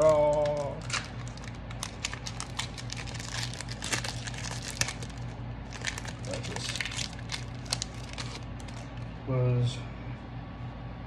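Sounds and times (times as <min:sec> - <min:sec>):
foil wrapper crinkling: 0:00.0 - 0:09.1.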